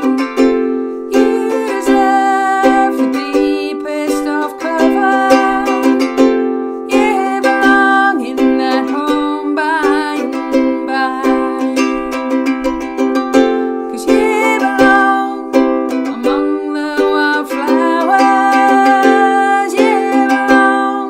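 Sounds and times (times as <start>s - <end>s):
strummed ukulele: 0.0s - 21.0s
woman singing with vibrato: 0.0s - 21.0s.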